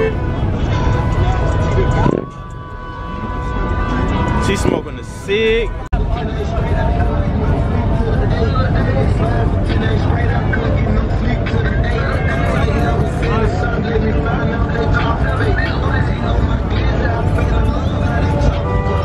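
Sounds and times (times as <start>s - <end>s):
car engines running: 0.0s - 19.0s
music playing: 0.0s - 19.0s
voices talking and calling out: 0.0s - 19.0s.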